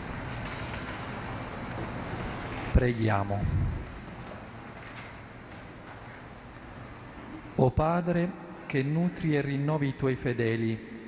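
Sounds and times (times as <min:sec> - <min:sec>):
room tone hiss and rumble: 0:00.0 - 0:11.0.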